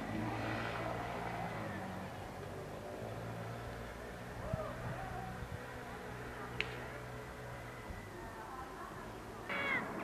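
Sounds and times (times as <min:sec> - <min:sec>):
distant engine humming: 0:09.1 - 0:10.0.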